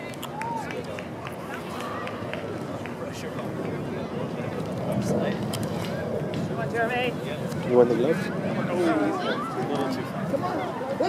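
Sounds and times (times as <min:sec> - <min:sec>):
faint calls of players and spectators: 0:00.0 - 0:11.0
steady background rush: 0:00.0 - 0:11.0.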